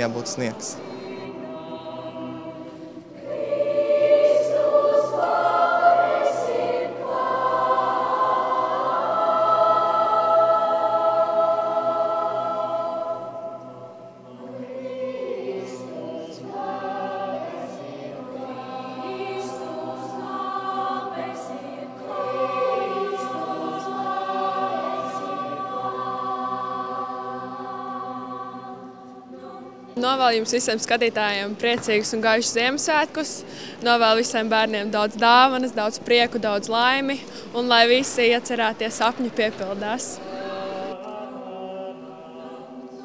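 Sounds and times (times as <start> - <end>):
children's choir singing: 0.0 - 33.5, 37.5 - 43.0.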